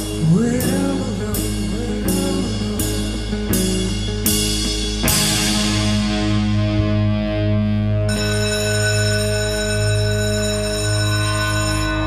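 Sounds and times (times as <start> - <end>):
rock band droning: 0.0 - 12.0
high ringing tone: 8.1 - 12.0.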